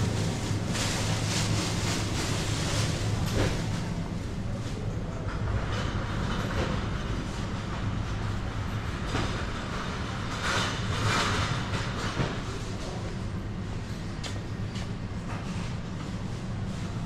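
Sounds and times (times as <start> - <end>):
freezer cabinets humming: 0.0 - 5.3
store noise: 0.0 - 17.0.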